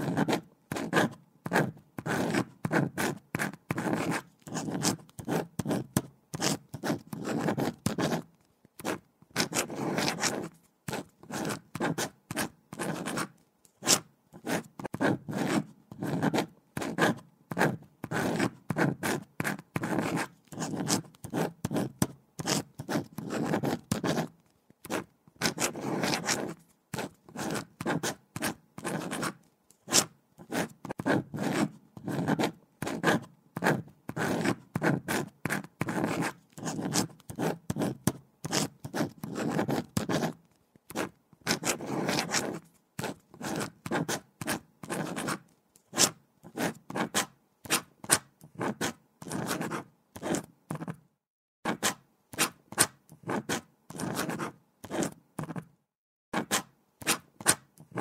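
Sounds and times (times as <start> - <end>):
pen scratching on paper: 0.0 - 51.0, 51.7 - 55.7, 56.4 - 58.0.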